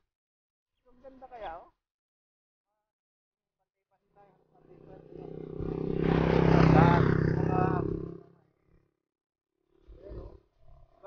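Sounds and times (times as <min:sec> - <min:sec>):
motorcycle engine driving past: 0:04.1 - 0:09.0.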